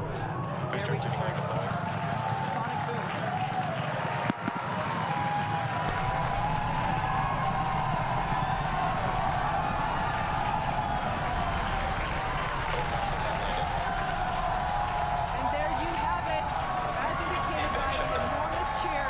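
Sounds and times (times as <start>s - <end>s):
crowd cheering and applauding: 0.0s - 19.0s
low rumble: 5.6s - 18.4s.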